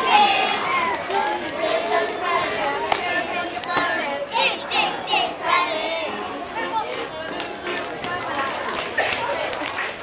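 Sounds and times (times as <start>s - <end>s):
children's voices and chatter: 0.0s - 10.0s
music: 0.0s - 10.0s.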